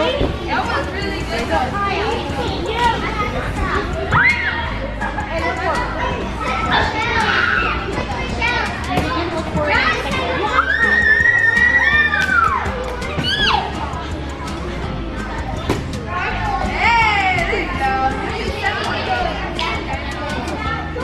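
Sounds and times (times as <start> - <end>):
girls chattering and calling out: 0.0 - 21.0.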